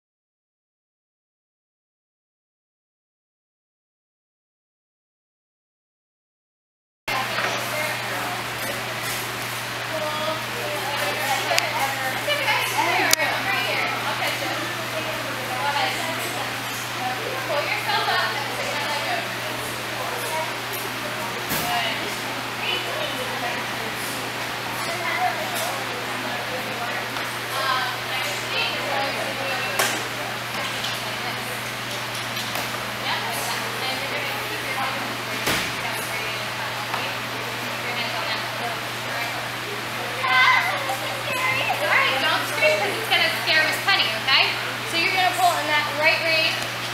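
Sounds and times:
indistinct talking voices: 7.1 - 46.9.

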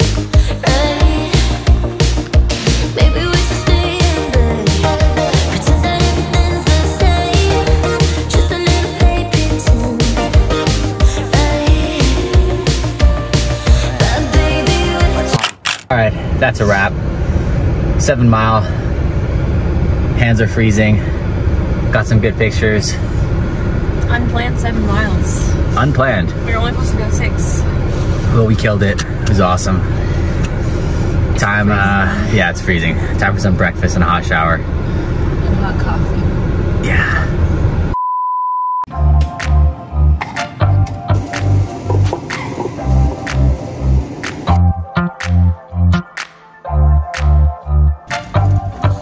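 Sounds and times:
music with bass beat: 0.0 - 15.4, 38.9 - 49.0
person speaking: 31.4 - 32.6
test-tone beep: 38.0 - 38.9.

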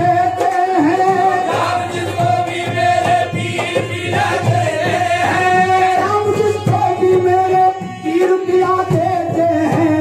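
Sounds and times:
percussion beat: 0.0 - 10.0.

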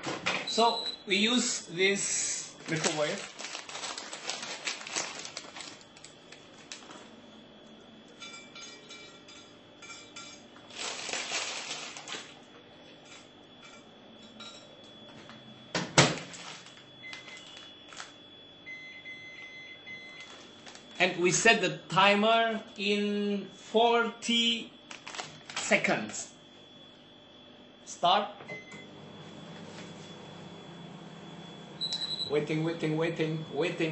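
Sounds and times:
plastic packet rustling: 2.5 - 7.1, 10.6 - 12.4, 16.2 - 18.2, 20.2 - 21.0, 24.9 - 25.7
crackers clinking: 2.6 - 7.1, 8.7 - 12.4, 16.2 - 18.2, 24.9 - 25.7
short electronic beeps: 31.8 - 32.3.

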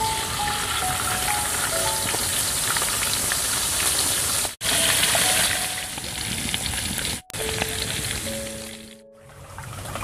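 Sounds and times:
background music: 0.0 - 2.2, 4.6 - 9.6
oil sizzling in a wok: 0.0 - 8.9.

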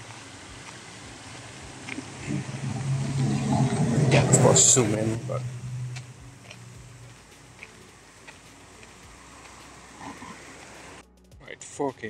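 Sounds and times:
city background noise: 0.0 - 11.1.

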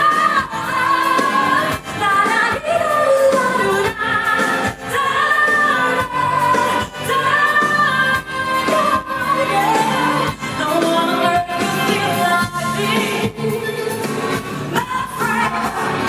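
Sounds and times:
band accompaniment: 0.0 - 16.0
woman singing into microphone: 0.0 - 16.0.

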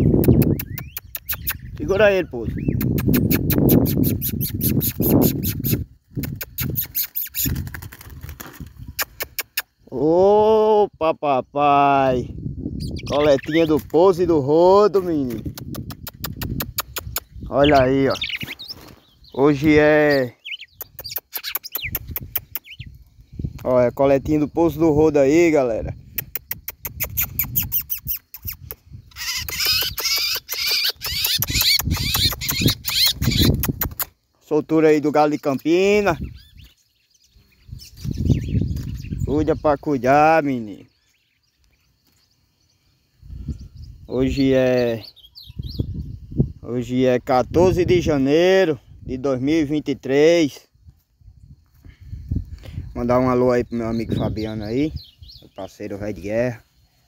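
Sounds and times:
bird alarm chips: 0.0 - 9.9, 12.7 - 25.5, 26.1 - 46.5, 52.9 - 57.0
songbird singing: 0.0 - 57.0
sharp clicks: 0.2 - 1.8, 8.9 - 9.8, 15.3 - 17.5, 20.6 - 22.8, 26.1 - 34.2.

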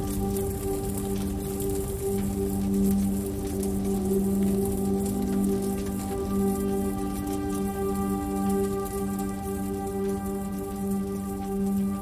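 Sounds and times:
ambient meditation music: 0.0 - 12.0
soft rain-like patter: 0.0 - 12.0.

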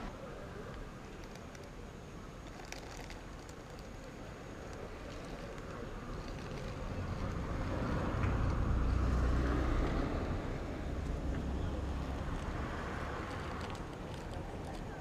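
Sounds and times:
car passing with tyre noise: 4.8 - 15.0.

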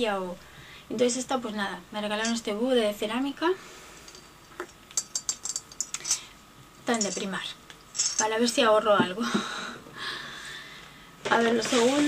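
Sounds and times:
coins rattling in piggy bank: 6.9 - 8.5.

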